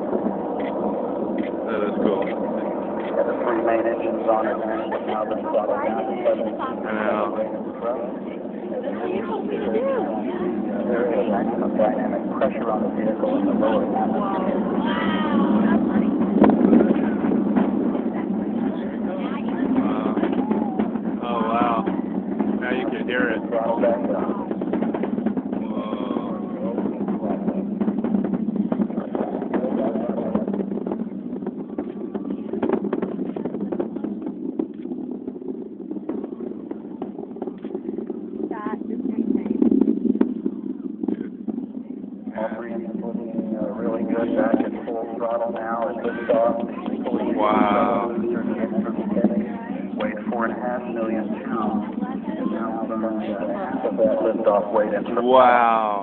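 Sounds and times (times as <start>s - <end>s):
distant rocket launch rumble: 0.0s - 56.0s.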